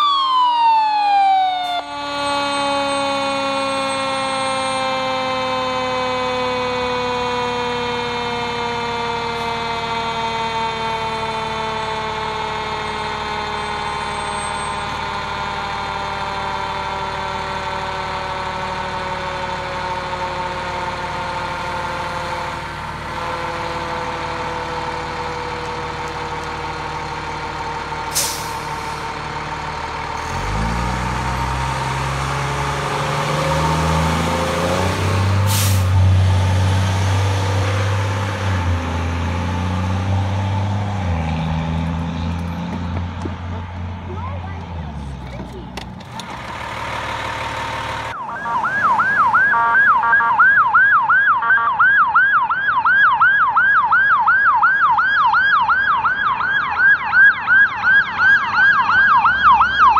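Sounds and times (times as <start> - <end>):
siren-like tone winding down: 0.0 - 26.5, 47.0 - 59.9
fire engine diesel engine: 0.0 - 59.9.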